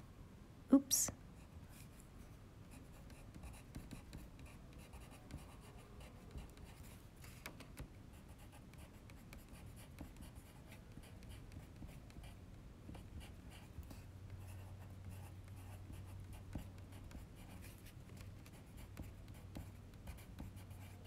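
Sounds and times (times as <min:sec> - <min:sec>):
pencil scratching on paper: 0:02.7 - 0:21.0.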